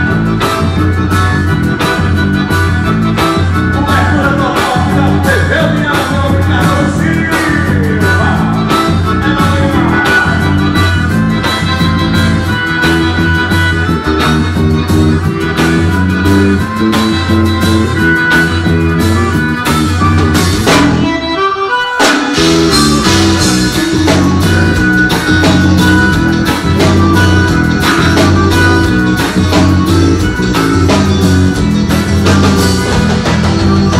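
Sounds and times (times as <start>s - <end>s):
live band with accordion: 0.0s - 33.9s.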